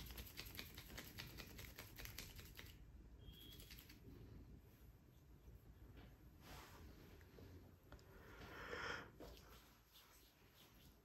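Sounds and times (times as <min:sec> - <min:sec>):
soft crackly clicks of massage: 0:00.0 - 0:02.9.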